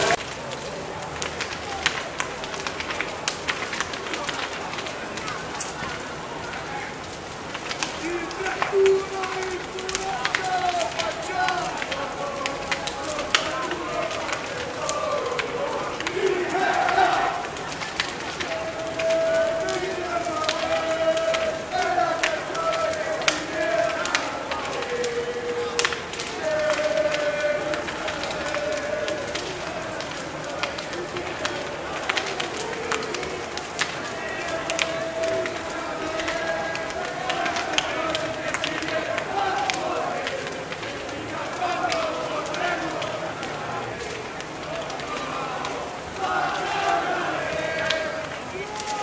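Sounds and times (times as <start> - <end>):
bonfire crackling and popping: 0.0 - 49.0
crowd voices calling out: 0.0 - 49.0
rush of flames: 0.0 - 49.0.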